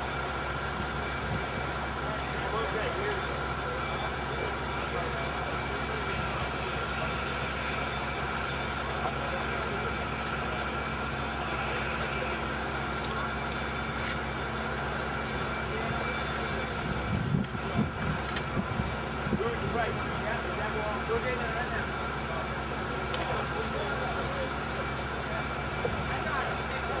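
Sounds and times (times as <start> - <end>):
heavy machine engine running: 0.0 - 27.0
people's voices: 0.6 - 27.0.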